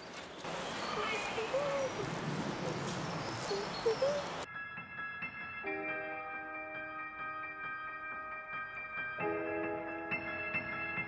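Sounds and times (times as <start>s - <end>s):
bird calling: 0.0s - 4.5s
woodland ambience: 0.0s - 4.5s
chiming bell-like music: 4.0s - 11.0s.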